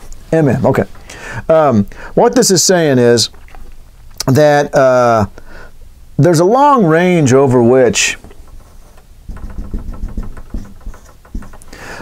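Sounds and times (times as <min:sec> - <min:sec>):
marker tapping on whiteboard: 0:08.2 - 0:12.0.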